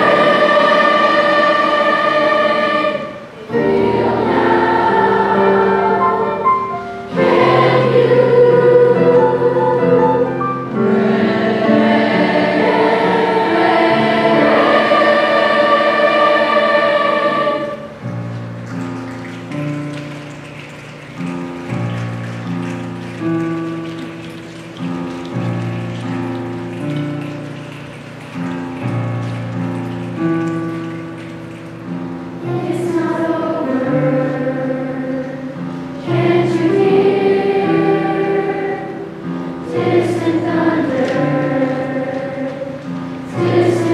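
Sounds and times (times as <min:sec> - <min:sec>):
youth choir singing: 0:00.0 - 0:18.0, 0:32.4 - 0:43.9
keyboard chords: 0:00.0 - 0:43.9.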